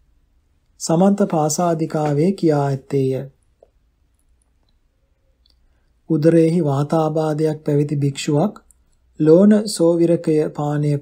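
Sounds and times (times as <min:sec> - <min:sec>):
man reading aloud: 0:00.8 - 0:03.5, 0:06.0 - 0:11.0.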